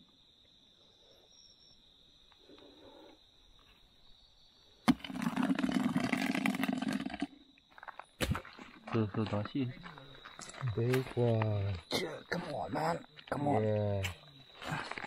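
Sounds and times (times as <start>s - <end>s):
crickets trilling: 0.0s - 15.0s.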